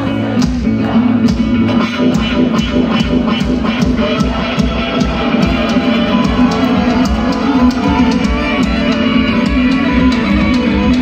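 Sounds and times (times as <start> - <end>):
live band playing instrumental: 0.0 - 11.0.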